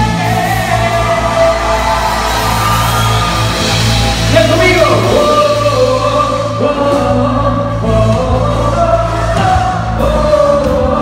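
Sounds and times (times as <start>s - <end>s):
drum kit: 0.0s - 11.0s
electric bass: 0.0s - 11.0s
person singing: 0.0s - 11.0s.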